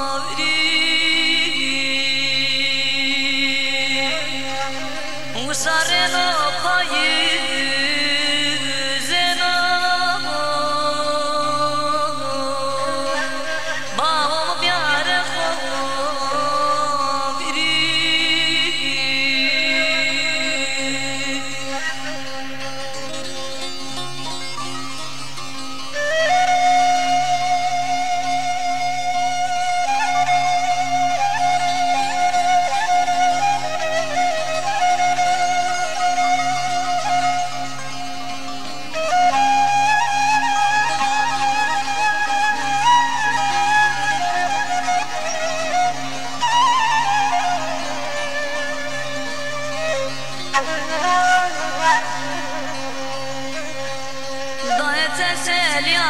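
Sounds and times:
folk song with held melody notes: 0:00.0 - 0:56.0.

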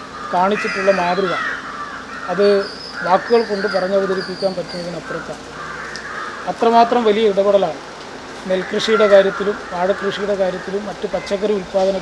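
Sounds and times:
voice-over narrating: 0:00.4 - 0:01.5, 0:02.3 - 0:05.4, 0:06.5 - 0:07.8, 0:08.4 - 0:12.0.

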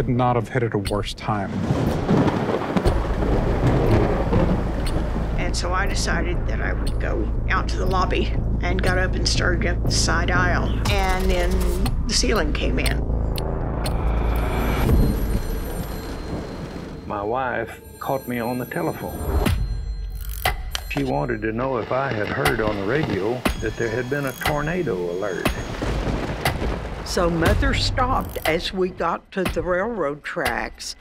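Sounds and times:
thunder rumble: 0:01.2 - 0:18.0, 0:21.2 - 0:29.0
heavy rain: 0:01.4 - 0:06.4, 0:21.8 - 0:28.3
high steady ringing tone: 0:13.5 - 0:26.0.

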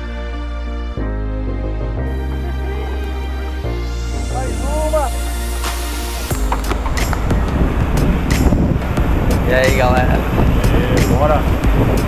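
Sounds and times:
wind buffeting microphone: 0:06.3 - 0:12.0.

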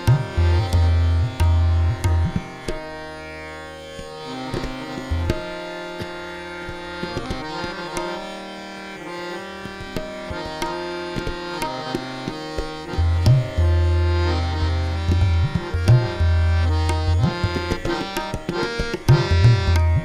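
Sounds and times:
tabla strokes: 0:00.0 - 0:02.9, 0:04.0 - 0:08.3, 0:09.6 - 0:20.0
harmonium held notes: 0:00.0 - 0:20.0
tanpura drone: 0:00.0 - 0:20.0.

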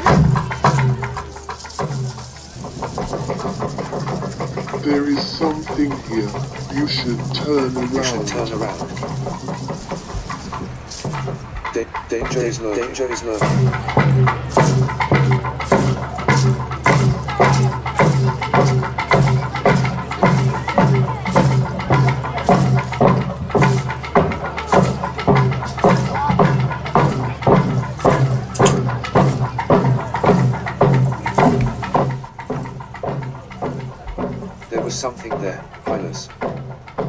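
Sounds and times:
steady drum beat: 0:00.0 - 0:37.0.

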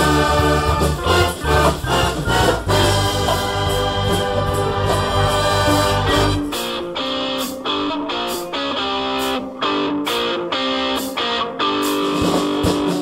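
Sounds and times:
concert band playing rock: 0:00.0 - 0:13.0
drum kit beat: 0:00.0 - 0:13.0.

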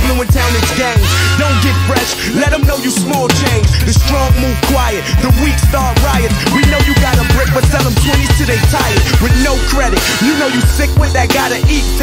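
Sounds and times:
deep bass line: 0:00.0 - 0:12.0
rapping over a hip hop beat: 0:00.0 - 0:12.0.

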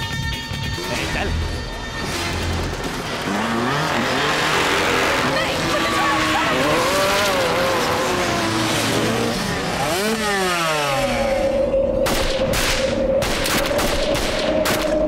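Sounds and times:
dirt bike engines revving: 0:00.8 - 0:12.0.

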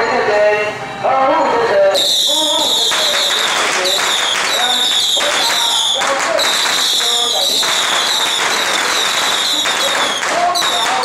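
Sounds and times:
firecracker crackle: 0:02.0 - 0:11.0
firework whistling: 0:02.0 - 0:11.0.

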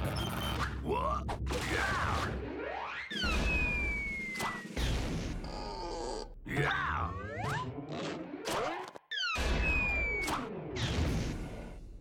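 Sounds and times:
sliding whistle glides: 0:03.5 - 0:04.7
grunts: 0:05.4 - 0:08.4.

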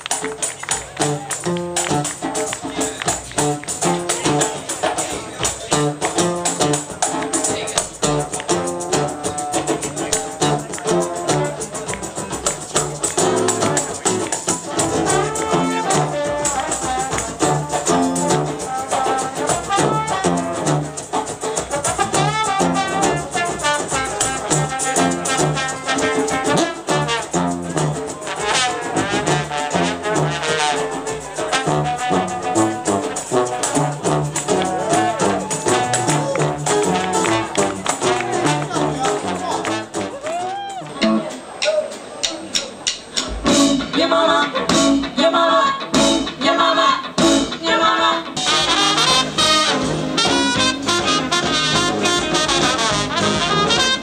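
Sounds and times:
jazz band with brass: 0:00.0 - 0:54.0.

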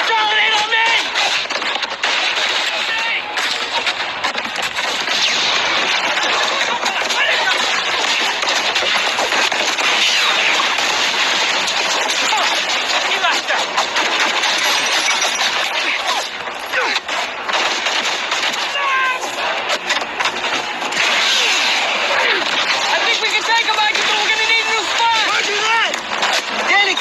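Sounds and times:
automatic gunfire: 0:00.0 - 0:27.0
voices shouting: 0:18.6 - 0:19.4.

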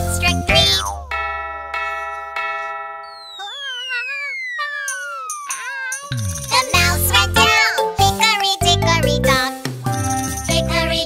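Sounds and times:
cartoon clock bell striking: 0:00.5 - 0:07.8, 0:09.9 - 0:10.8
falling slide whistle: 0:03.0 - 0:06.2
high-pitched cartoon cry: 0:03.3 - 0:07.8.

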